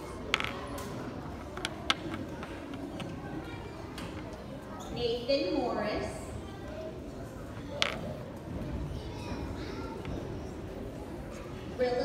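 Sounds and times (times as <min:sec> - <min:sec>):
low room murmur: 0:00.0 - 0:12.0.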